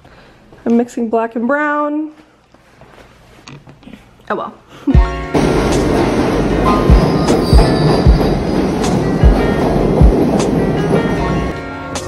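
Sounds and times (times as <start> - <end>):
background music with steady beat: 4.9 - 12.0
subway train rushing past: 5.3 - 12.0.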